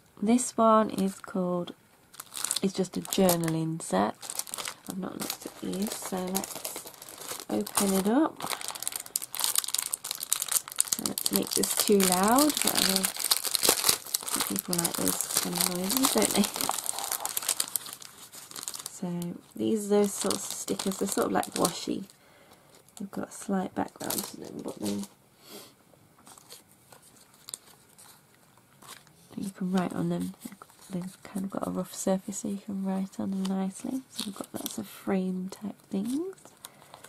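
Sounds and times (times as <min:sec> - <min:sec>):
plastic packaging crinkling: 0:02.1 - 0:23.1, 0:23.8 - 0:25.1, 0:26.2 - 0:32.0, 0:33.0 - 0:34.9, 0:35.9 - 0:37.0
paper rustling: 0:04.2 - 0:18.9.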